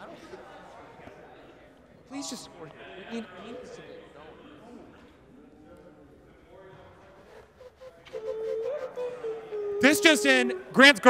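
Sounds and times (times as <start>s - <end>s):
close speech: 9.8s - 11.0s.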